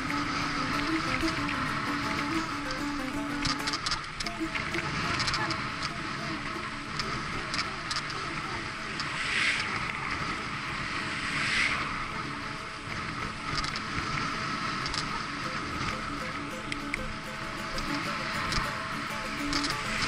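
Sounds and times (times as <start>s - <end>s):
background music: 0.0s - 6.9s, 15.4s - 20.0s.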